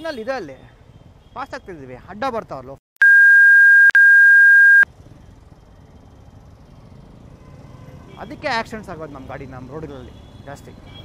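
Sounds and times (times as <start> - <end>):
high-pitched censor beep: 3.0 - 4.8
road noise: 4.3 - 11.0.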